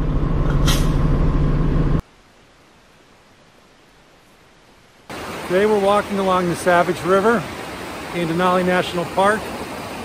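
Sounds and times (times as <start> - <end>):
brief hiss: 0.5 - 1.0.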